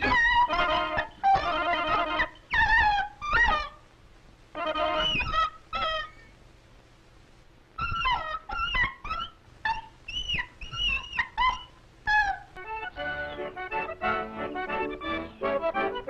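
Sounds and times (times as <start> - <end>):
cartoon dog yelps: 0.0 - 3.8, 4.6 - 6.2, 7.8 - 13.1.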